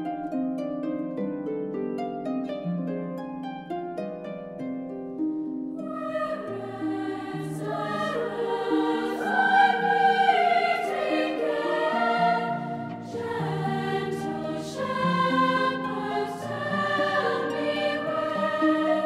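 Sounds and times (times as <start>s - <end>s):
harp: 0.0s - 19.0s
girls' choir singing: 5.8s - 19.0s.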